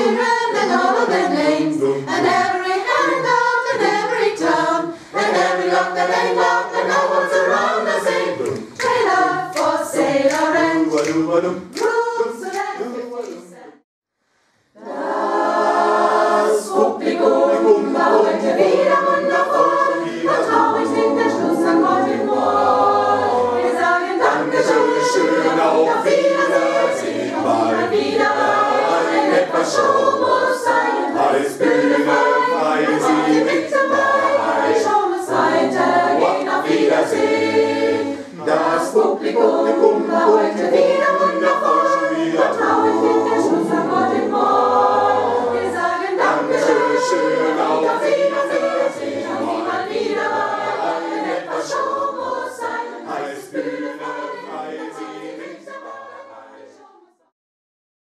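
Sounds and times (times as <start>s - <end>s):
mixed choir singing a cappella: 0.0s - 13.8s, 14.7s - 57.3s.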